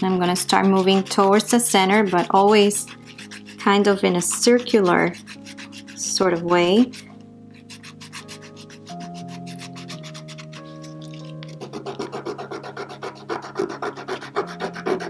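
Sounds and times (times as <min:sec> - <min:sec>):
nail file rasping: 0:00.0 - 0:15.0
soft background music: 0:00.0 - 0:15.0.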